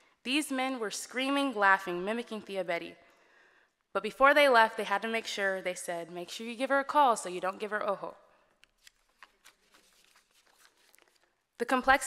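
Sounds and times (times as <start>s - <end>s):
paper rustling at microphone: 8.6s - 11.5s.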